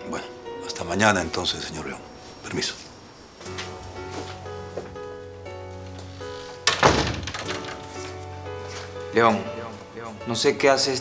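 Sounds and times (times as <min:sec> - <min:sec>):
soft background music: 0:00.0 - 0:11.0
wooden door shutting thunk: 0:06.5 - 0:08.2.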